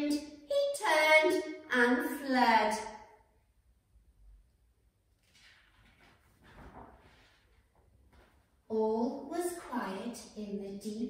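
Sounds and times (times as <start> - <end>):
paper page turning: 5.1 - 8.4.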